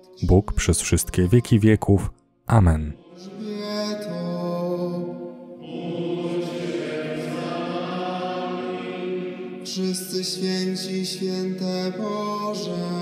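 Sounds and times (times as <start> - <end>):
slow sung liturgical chant: 3.0 - 13.0.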